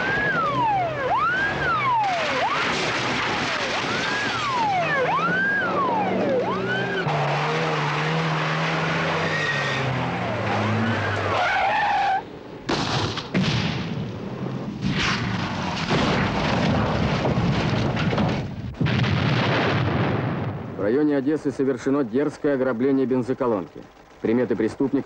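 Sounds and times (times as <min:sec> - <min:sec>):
car engine revving: 0:00.0 - 0:11.4
police siren wailing: 0:00.0 - 0:12.3
crashes: 0:01.8 - 0:05.5, 0:12.7 - 0:20.8
rough scraping and rumbling: 0:14.2 - 0:25.0.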